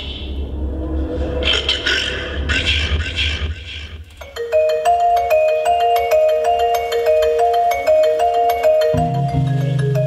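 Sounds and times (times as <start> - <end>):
low amplifier hum: 9.0 - 10.0.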